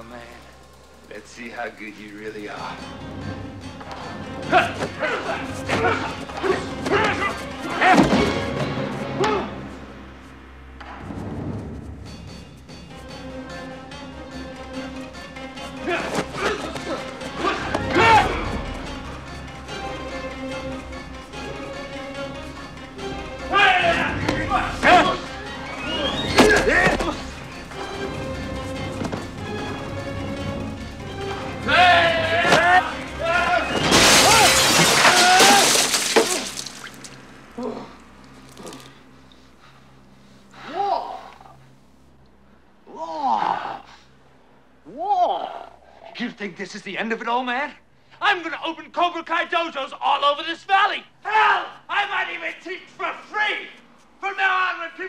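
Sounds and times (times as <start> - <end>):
dramatic film score: 0.0 - 55.0
loud crash: 33.7 - 37.1.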